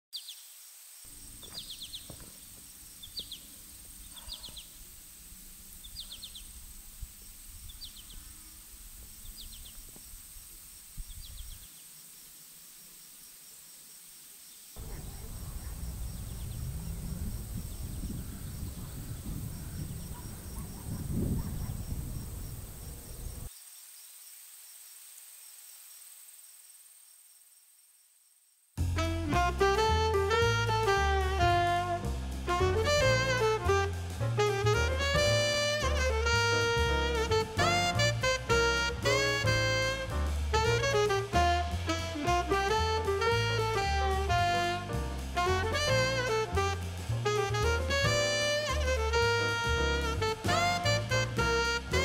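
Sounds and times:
bird chirping: 0.2 - 12.0, 14.5 - 23.6
high insect drone: 0.4 - 28.6
low rumble: 14.8 - 23.5.

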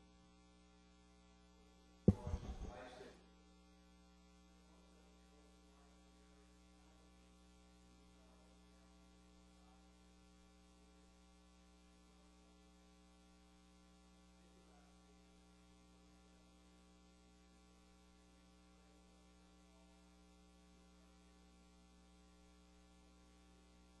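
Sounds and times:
faint electrical hum: 0.0 - 24.0.

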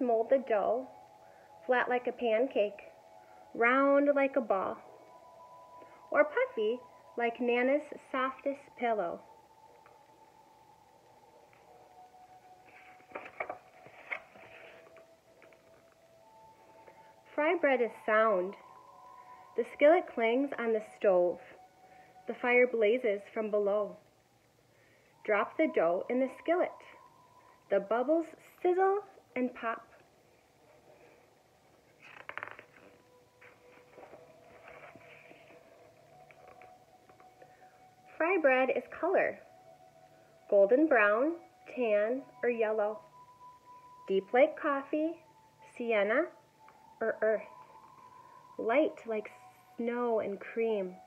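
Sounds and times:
faint steady hum: 0.0 - 51.0
paper rustling: 12.7 - 15.6, 32.0 - 36.7
book page turning: 12.7 - 15.8, 32.0 - 36.7
paper flicks and snaps: 13.1 - 14.3.

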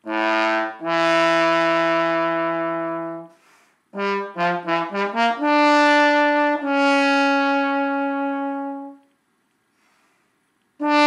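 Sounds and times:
solo trombone: 0.0 - 9.1, 10.8 - 11.0.

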